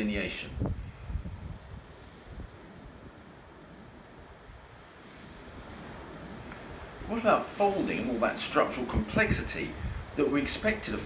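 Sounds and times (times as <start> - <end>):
sea surf rushing: 0.0 - 11.0
wind: 0.0 - 11.0.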